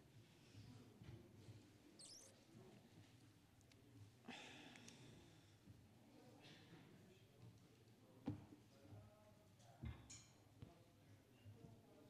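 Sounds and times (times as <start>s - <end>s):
faint murmur of people: 0.0s - 12.0s
brief high squeak: 2.0s - 2.4s.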